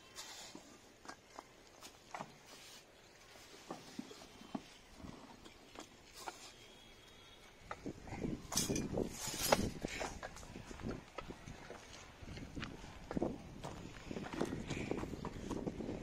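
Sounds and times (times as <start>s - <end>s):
footsteps on dry earth: 7.6s - 16.0s.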